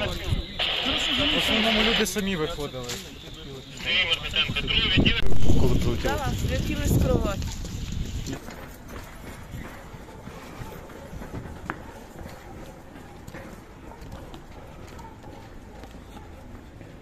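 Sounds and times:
footsteps on concrete stairs: 7.3 - 17.0.

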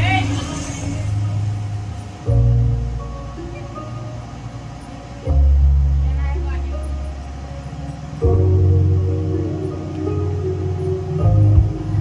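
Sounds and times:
deep sustained bass notes: 0.0 - 12.0
loud music through speakers: 6.8 - 12.0.

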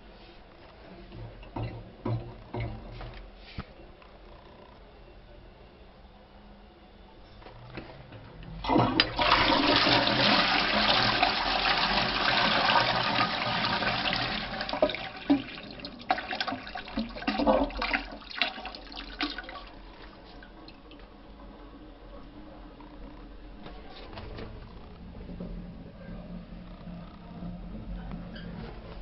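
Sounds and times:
toilet flushing: 8.6 - 21.0.

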